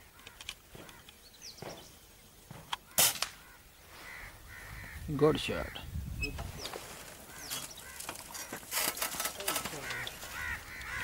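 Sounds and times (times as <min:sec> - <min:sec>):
bird calling: 0:02.7 - 0:11.0
air rifle shot: 0:02.9 - 0:03.4.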